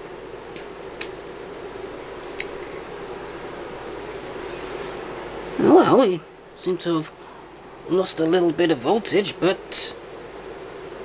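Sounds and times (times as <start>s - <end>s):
background hiss: 0.0s - 11.0s
steady low hum: 0.0s - 11.0s.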